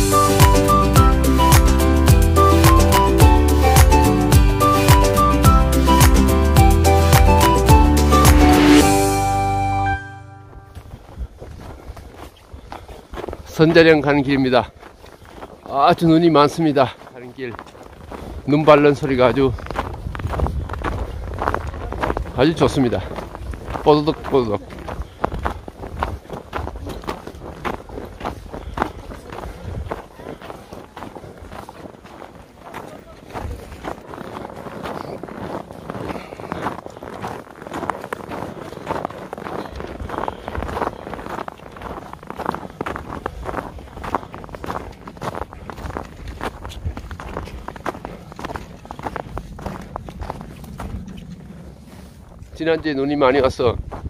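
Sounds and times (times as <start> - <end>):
footsteps crunching in snow: 0.0 - 54.0.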